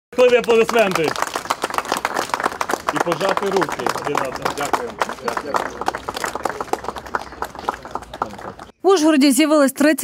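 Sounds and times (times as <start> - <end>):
small crowd clapping: 0.1 - 8.7.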